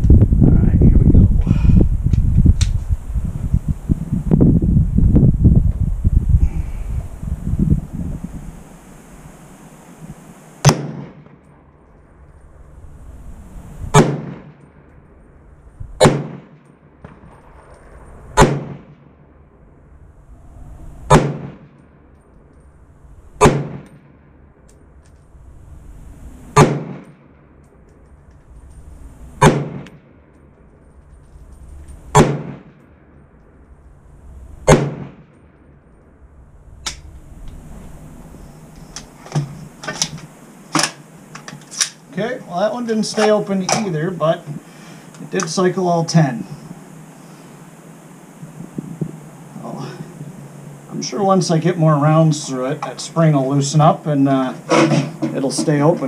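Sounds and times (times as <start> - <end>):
rifle shots: 10.6 - 11.9, 13.9 - 14.9, 16.0 - 19.6, 21.1 - 22.0, 23.4 - 24.4, 26.5 - 27.6, 29.4 - 30.4, 32.1 - 33.2, 34.6 - 35.6.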